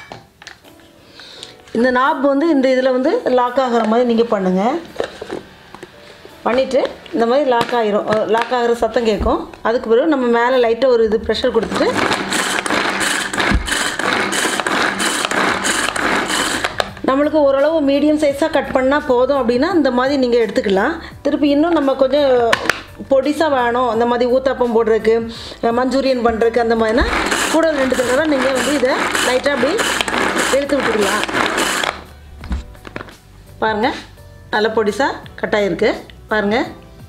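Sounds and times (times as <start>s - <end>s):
pull-cord chopper whirring: 11.7s - 16.9s, 26.9s - 32.0s.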